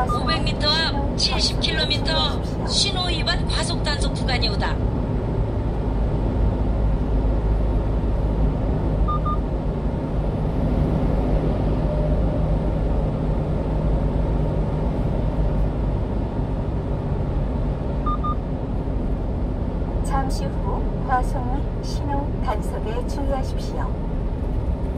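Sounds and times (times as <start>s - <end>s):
double electronic beeps: 0.0s - 0.6s, 9.1s - 9.4s, 18.1s - 18.4s
truck road and engine noise: 0.0s - 24.9s.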